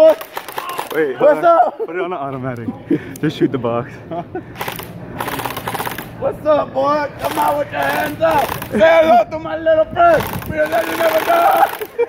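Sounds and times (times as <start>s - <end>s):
airsoft rifle automatic fire: 0.0s - 1.1s, 4.6s - 6.1s, 7.2s - 8.9s, 10.1s - 12.0s.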